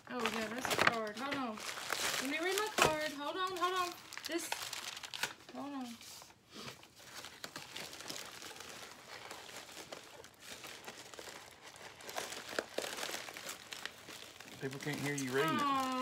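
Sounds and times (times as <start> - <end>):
packaging crinkling and rustling: 0.0 - 16.0.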